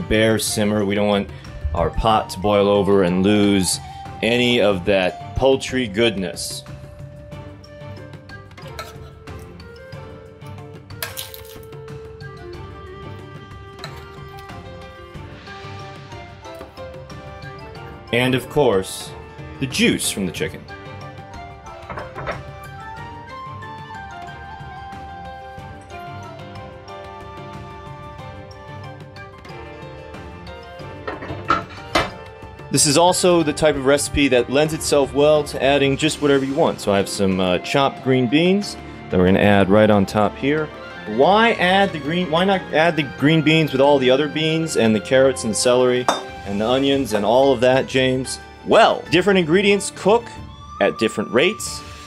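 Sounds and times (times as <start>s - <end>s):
background music: 0.0s - 52.0s
metal tongs clinking on cast iron: 8.6s - 9.6s, 46.1s - 46.4s.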